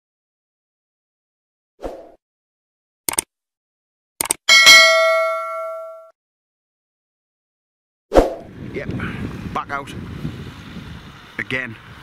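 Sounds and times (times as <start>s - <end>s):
short clicks: 3.1s - 3.3s, 4.2s - 4.4s
bright bell ding: 4.5s - 6.1s
wind on microphone: 8.3s - 12.0s.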